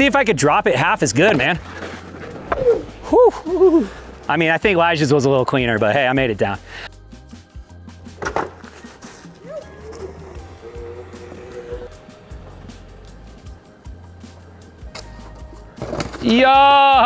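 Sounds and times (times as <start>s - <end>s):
quiet background music: 0.0s - 17.0s
electric board rolling over dirt: 0.6s - 6.2s, 8.2s - 17.0s.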